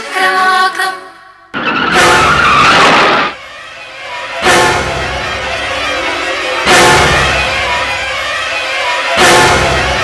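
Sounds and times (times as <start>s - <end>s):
music: 0.0s - 1.5s, 3.4s - 10.0s
loud rushing noise: 1.6s - 8.2s.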